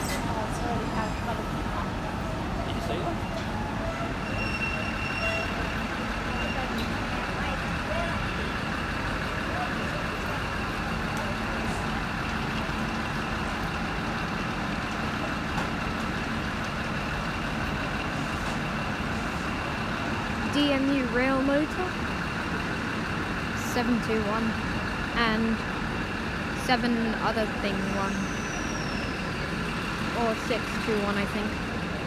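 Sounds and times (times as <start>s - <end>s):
diesel engine drone: 0.0s - 32.0s.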